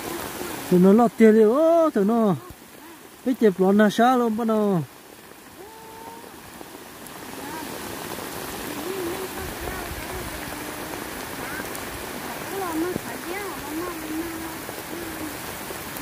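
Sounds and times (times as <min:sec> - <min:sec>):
steady rain falling: 0:00.0 - 0:16.0
woman speaking: 0:12.5 - 0:14.6.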